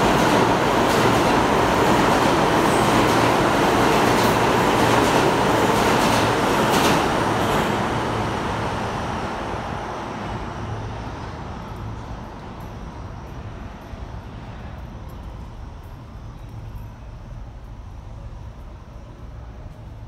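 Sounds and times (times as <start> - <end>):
subway train rumbling past: 0.0 - 20.0.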